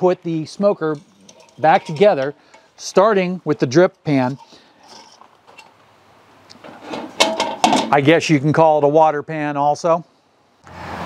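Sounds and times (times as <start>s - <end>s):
metal pan scraping and clanking: 0.6s - 3.2s, 4.2s - 5.8s, 6.6s - 8.0s
sharp metal knocks: 7.0s - 8.0s.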